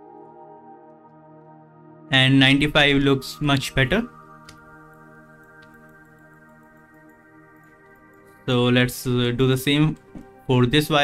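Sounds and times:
ambient pad music: 0.0s - 11.0s.

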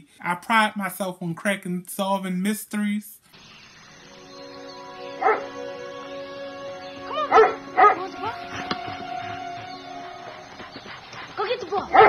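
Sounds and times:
sustained soundtrack music: 3.4s - 11.4s
dog barking: 10.3s - 12.0s.

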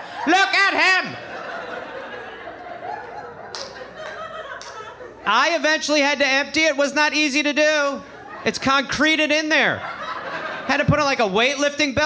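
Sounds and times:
audience laughing: 0.0s - 5.6s, 9.7s - 11.4s
people clapping: 3.4s - 4.9s.

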